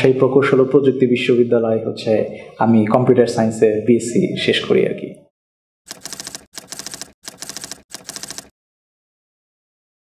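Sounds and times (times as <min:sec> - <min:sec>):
keyboard typing clicks: 0:05.9 - 0:08.5.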